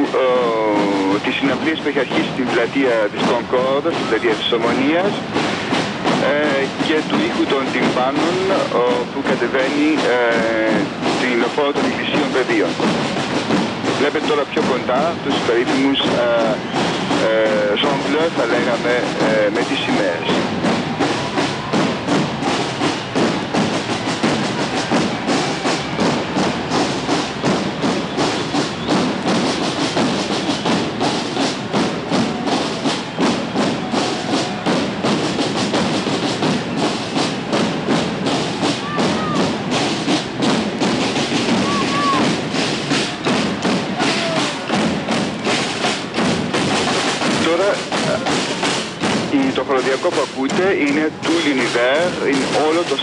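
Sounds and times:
marching drums beating: 0.0 - 53.0.

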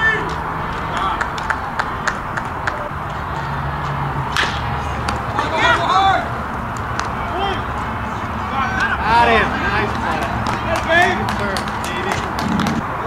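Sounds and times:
people calling out: 0.0 - 12.8
steady background noise: 0.0 - 13.0.

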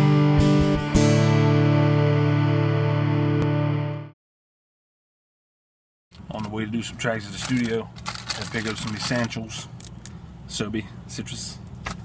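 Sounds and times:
guitar chords strummed: 0.0 - 4.2.

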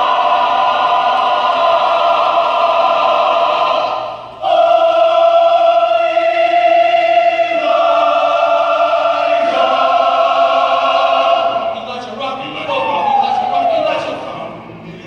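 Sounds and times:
mixed choir singing sustained chords: 0.0 - 15.0.

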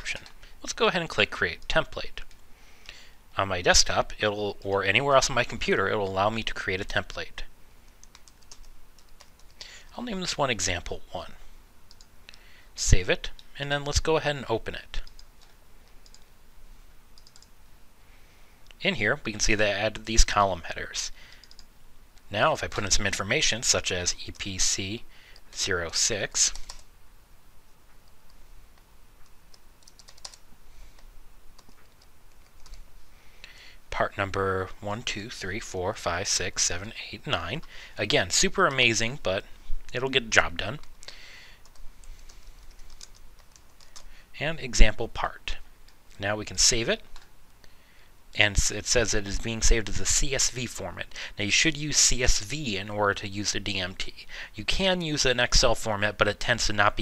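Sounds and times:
keyboard typing: 0.0 - 0.4, 7.9 - 9.6, 15.0 - 16.3, 17.2 - 17.5, 21.3 - 21.7, 29.2 - 30.4, 31.0 - 32.8, 41.6 - 44.1
low steady hiss: 0.0 - 57.0
computer mouse clicks: 7.9 - 9.6, 11.9 - 12.1, 15.0 - 16.3, 17.2 - 17.5, 21.3 - 22.3, 28.0 - 30.4.

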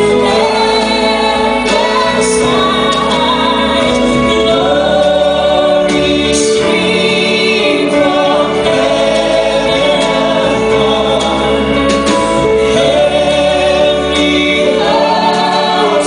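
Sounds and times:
harmony singers: 0.0 - 16.0
instrumental accompaniment: 0.0 - 16.0
woman singing lead: 0.0 - 16.0.

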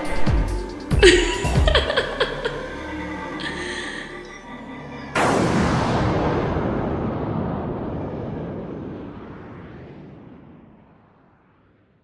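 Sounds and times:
deep explosion rumble: 5.2 - 11.7.

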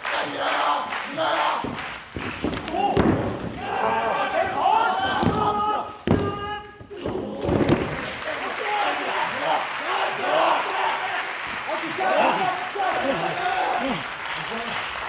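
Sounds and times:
crowd shouting: 2.7 - 14.1.

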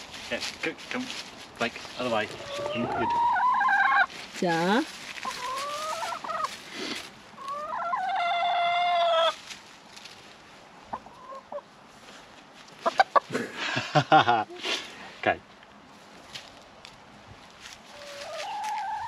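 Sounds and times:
hen squawking: 2.3 - 4.1.

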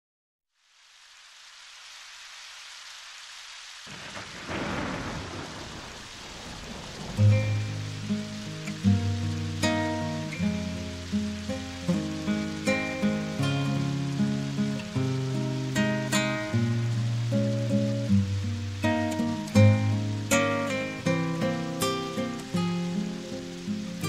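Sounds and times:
steady rain: 0.5 - 24.0
thunder rolling: 3.8 - 8.3.

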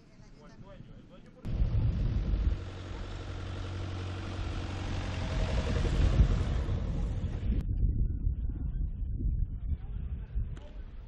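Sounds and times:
outdoor noise: 0.0 - 11.0
engine rumbling: 1.5 - 7.6.

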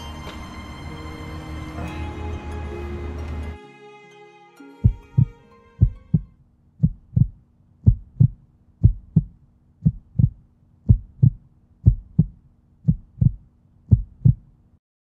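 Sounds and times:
heartbeat thumps: 4.8 - 14.5.

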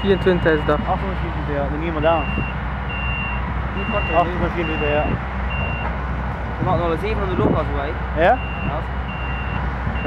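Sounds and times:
tractor diesel drone: 0.0 - 10.0
reversing alarm beeps: 2.0 - 5.9, 8.4 - 10.0.

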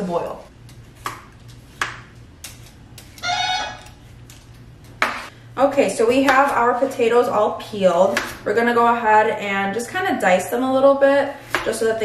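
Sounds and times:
door buzzer: 3.2 - 3.9.

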